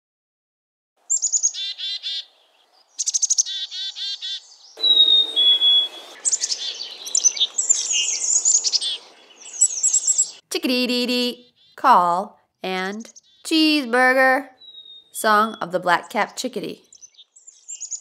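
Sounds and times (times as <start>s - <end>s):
chickadee calls: 1.1s - 18.0s
two-note whistled bird song: 4.8s - 10.4s.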